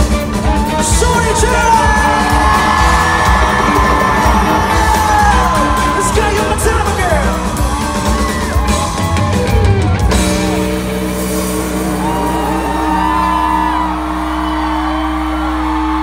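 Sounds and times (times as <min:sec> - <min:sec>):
fans yelling and cheering: 0:00.0 - 0:16.0
live pop-rock band: 0:00.0 - 0:16.0.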